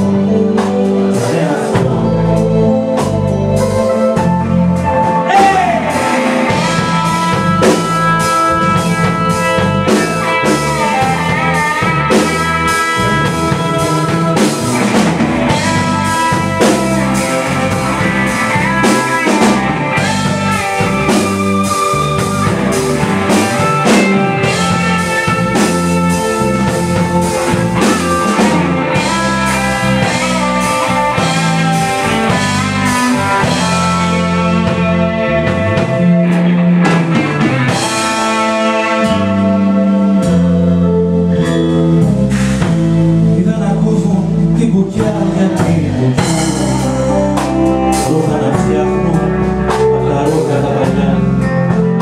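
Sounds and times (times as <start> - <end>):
bass guitar: 0.0 - 52.0
drum kit: 0.0 - 52.0
electric guitar: 0.0 - 52.0
live rock band playing: 0.0 - 52.0.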